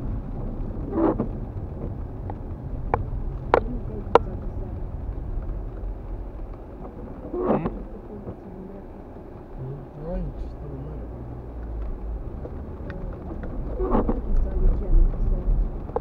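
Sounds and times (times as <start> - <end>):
car rumble inside cabin: 0.0 - 16.0.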